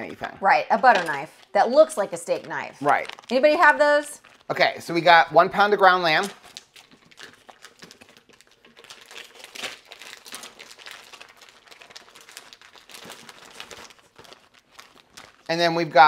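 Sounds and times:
plastic packaging crinkling: 0.8s - 16.0s.

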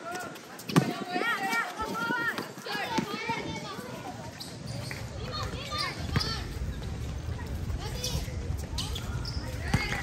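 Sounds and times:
girls calling and shouting: 0.0s - 10.0s.

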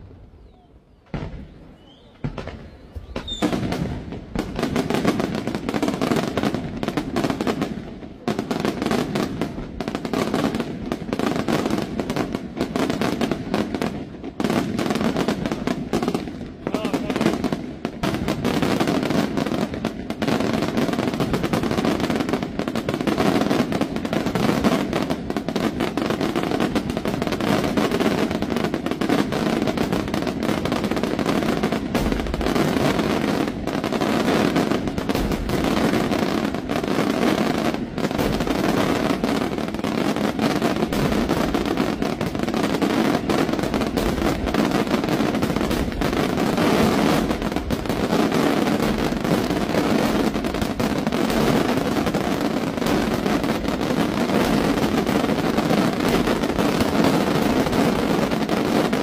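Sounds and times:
firework crackle: 0.0s - 59.0s
firework shells bursting: 1.1s - 4.5s.

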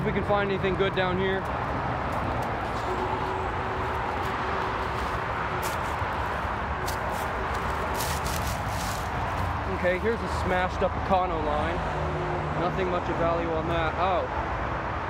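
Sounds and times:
road traffic going by: 0.0s - 15.0s
footsteps through brush: 1.4s - 10.1s.

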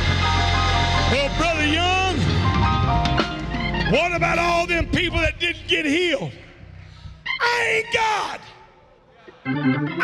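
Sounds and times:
keyboard sustained chords: 0.0s - 4.8s, 9.3s - 10.0s
man shouting: 7.4s - 8.9s.

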